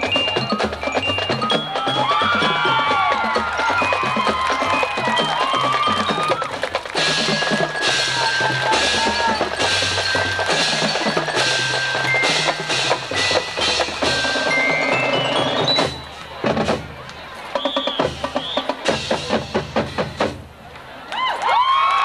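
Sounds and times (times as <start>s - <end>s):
mallet keyboards ringing: 0.0s - 16.7s
rising run on bells: 0.0s - 19.7s
low drums: 0.0s - 20.7s.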